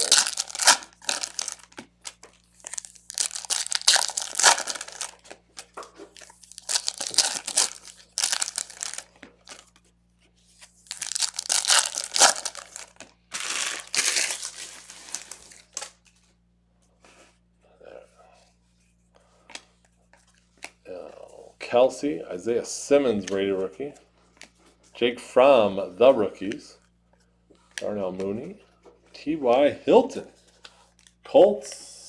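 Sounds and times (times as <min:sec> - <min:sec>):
card wrappers crinkling and tearing: 0:00.0 - 0:09.8, 0:10.6 - 0:16.1.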